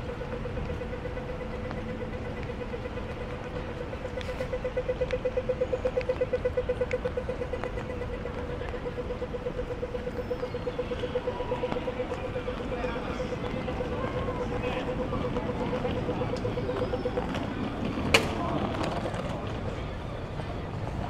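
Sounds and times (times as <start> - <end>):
city traffic hum: 0.0 - 21.0
crossing signal rapid beeping: 0.0 - 21.0.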